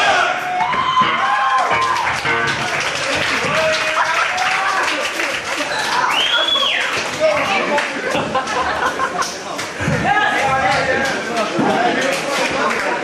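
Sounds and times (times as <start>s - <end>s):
people shouting: 0.0s - 2.1s
crowd clapping: 0.6s - 9.8s, 10.4s - 13.0s.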